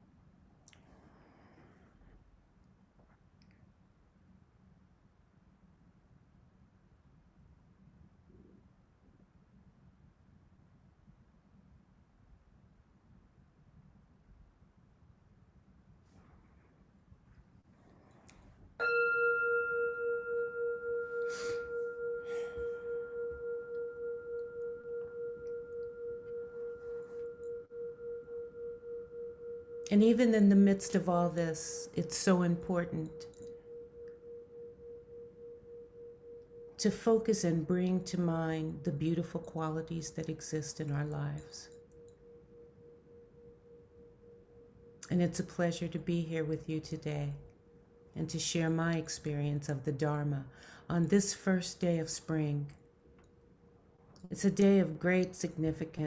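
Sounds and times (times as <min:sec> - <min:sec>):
faint steady tone: 0:00.0 - 0:56.0
singing bowl ringing: 0:18.8 - 0:49.4.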